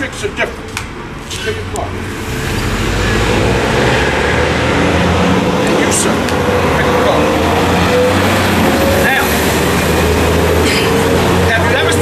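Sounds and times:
vehicle engine rumble: 0:00.0 - 0:12.0
man speaking: 0:05.6 - 0:07.6, 0:08.8 - 0:09.5, 0:11.4 - 0:12.0.

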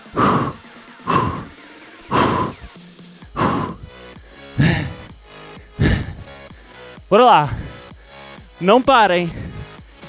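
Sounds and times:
man exhaling forcefully: 0:00.0 - 0:02.7, 0:03.4 - 0:03.9, 0:04.6 - 0:05.1, 0:05.8 - 0:06.4, 0:07.5 - 0:07.8, 0:09.3 - 0:09.8
background music: 0:00.0 - 0:10.0.

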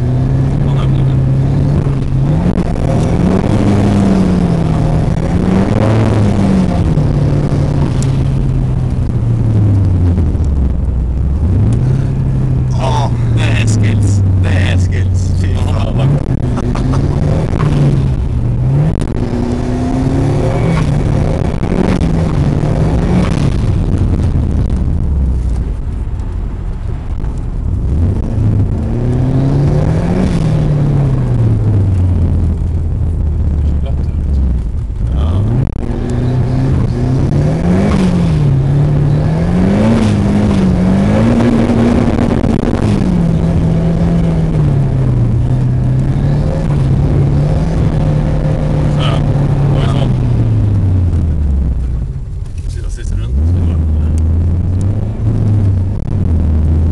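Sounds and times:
car engine from inside cabin: 0:00.0 - 0:56.9.

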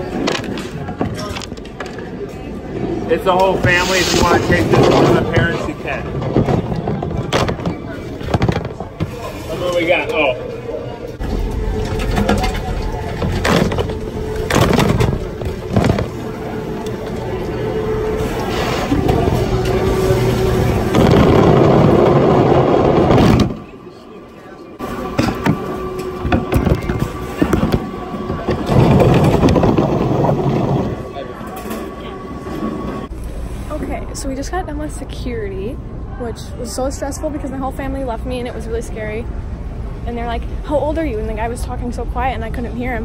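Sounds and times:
muffled voices: 0:00.0 - 0:39.3.

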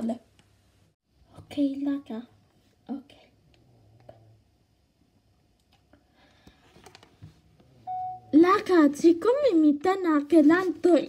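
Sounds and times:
electronic beep: 0:07.9 - 0:08.3.

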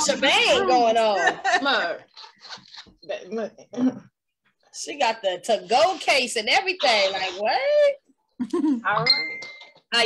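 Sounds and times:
women talking over video call: 0:00.0 - 0:02.3, 0:03.0 - 0:08.1, 0:08.7 - 0:10.0
women laughing: 0:08.4 - 0:08.9.

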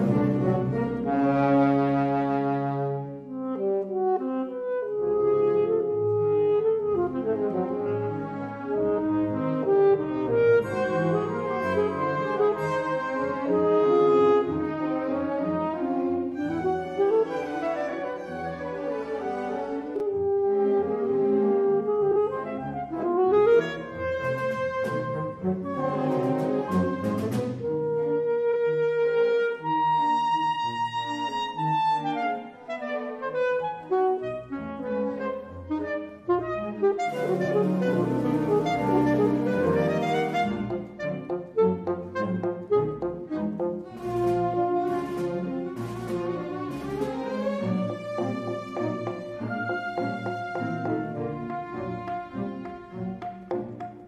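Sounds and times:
string orchestra: 0:00.0 - 0:54.0
alto saxophone solo: 0:00.1 - 0:18.5, 0:19.2 - 0:52.6.

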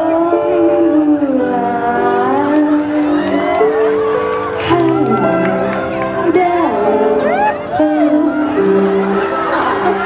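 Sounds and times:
woman singing love song: 0:00.0 - 0:03.8, 0:04.5 - 0:09.5.

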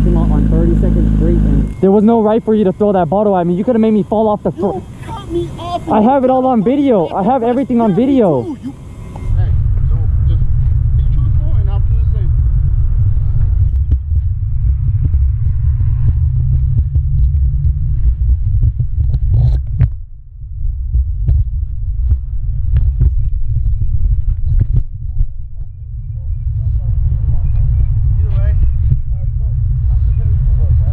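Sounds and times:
faint voices: 0:00.0 - 0:12.2
motorcycle low rumble: 0:00.0 - 0:30.9.

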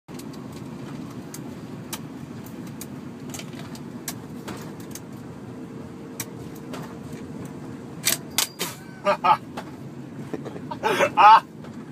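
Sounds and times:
van engine idling: 0:00.1 - 0:11.9.

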